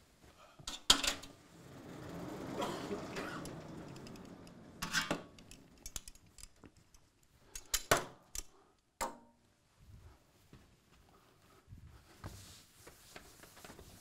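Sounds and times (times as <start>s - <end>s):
chalkboard panels sliding: 1.2s - 5.8s.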